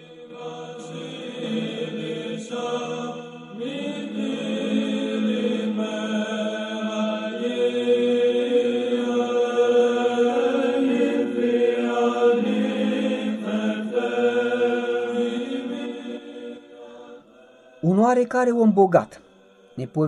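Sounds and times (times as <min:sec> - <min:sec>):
slow chant of sung notes: 0:00.0 - 0:18.3, 0:19.1 - 0:20.0.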